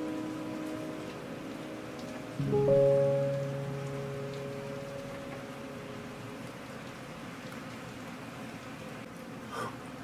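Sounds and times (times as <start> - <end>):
soft piano chord ringing: 0.0 - 7.0
soft rain hissing: 0.0 - 10.0.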